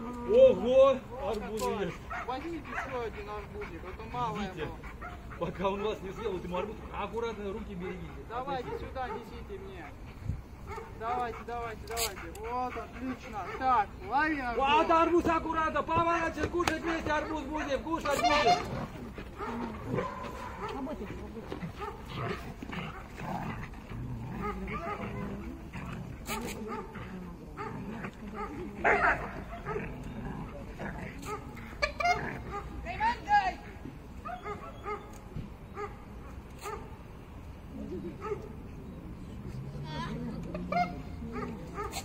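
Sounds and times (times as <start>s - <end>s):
dog barking: 1.8s - 3.1s, 8.6s - 9.4s, 10.7s - 11.0s, 13.4s - 13.7s, 19.4s - 20.9s, 21.8s - 22.1s, 24.4s - 25.4s, 26.3s - 27.0s, 28.4s - 30.0s, 31.2s - 32.8s, 34.2s - 35.2s, 35.8s - 36.0s, 36.6s - 36.9s, 38.2s - 38.5s, 40.7s - 42.0s.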